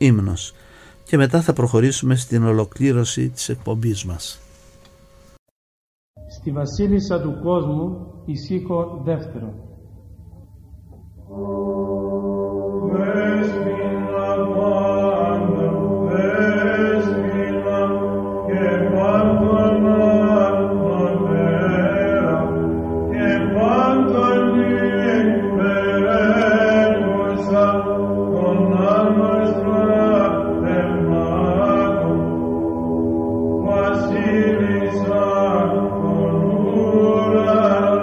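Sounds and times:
steady held drone: 0.0s - 5.4s, 6.2s - 38.0s
voices chanting a melody: 11.3s - 32.5s.

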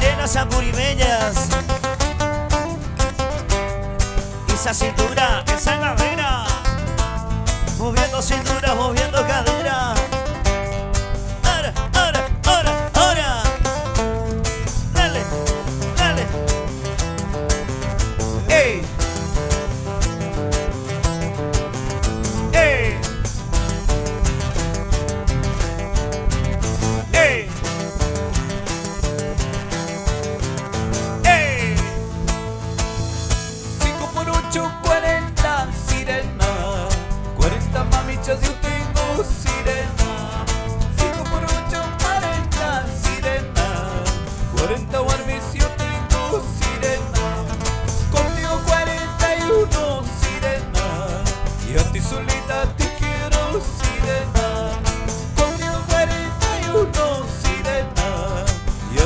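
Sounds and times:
man singing: 0.0s - 2.1s, 4.4s - 10.4s, 11.3s - 14.0s, 14.7s - 16.6s, 18.4s - 19.1s, 22.3s - 23.3s, 27.0s - 27.8s, 31.2s - 32.0s, 33.6s - 59.0s
acoustic guitars playing: 0.0s - 59.0s
bass guitar: 0.0s - 59.0s.

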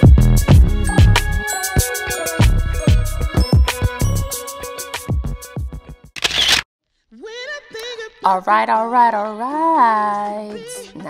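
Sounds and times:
background music with drum beat: 0.0s - 6.0s
short burst of noise: 6.2s - 6.6s.

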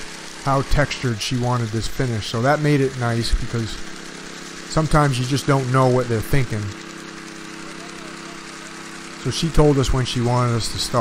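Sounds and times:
power trowel engine running: 0.0s - 11.0s.

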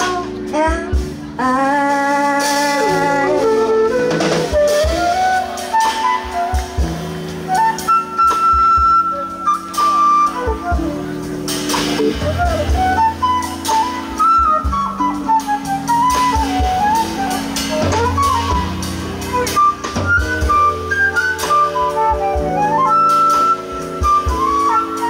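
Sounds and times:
woman singing: 0.0s - 3.6s
drum kit: 0.0s - 25.0s
electric bass: 0.0s - 25.0s
flute melody: 0.0s - 25.0s.

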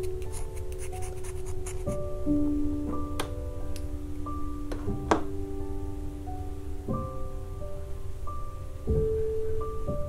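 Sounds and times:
pencil being sharpened: 0.0s - 2.0s
soft instrumental music: 0.0s - 10.0s.

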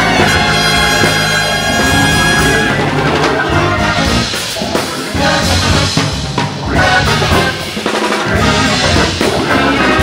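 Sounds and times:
horns playing: 0.0s - 10.0s
live rock band playing: 0.0s - 10.0s.

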